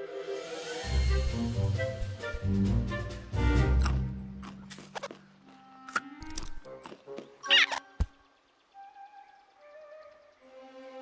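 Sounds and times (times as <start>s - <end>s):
orchestral film score: 0.0s - 11.0s
cartoon rodent squeaks and chatter: 7.4s - 7.8s.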